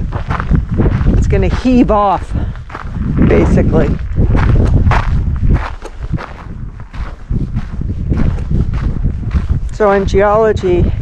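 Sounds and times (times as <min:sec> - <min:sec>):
footsteps walking: 0:00.0 - 0:11.0
steady low rumble: 0:00.0 - 0:11.0.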